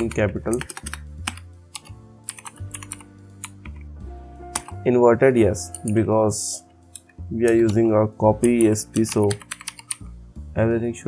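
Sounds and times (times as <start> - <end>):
keyboard keys clicking: 0.0 - 3.9, 4.5 - 4.8, 7.0 - 10.0
quiet background music: 0.0 - 11.0.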